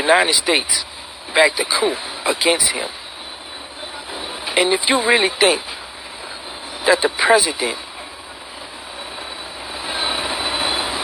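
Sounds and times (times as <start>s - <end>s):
steady rushing noise: 0.0s - 11.0s
faint high whistle: 7.8s - 11.0s.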